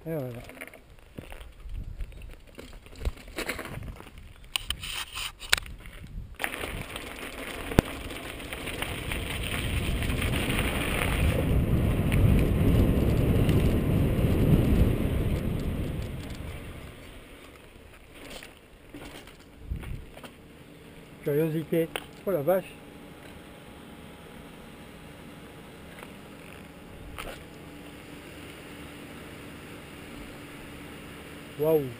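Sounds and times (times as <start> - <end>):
bike clicks and knocks: 0.2 - 11.3, 14.6 - 20.4, 25.9 - 27.6
wind rushing over microphone: 8.8 - 17.3, 19.6 - 20.2.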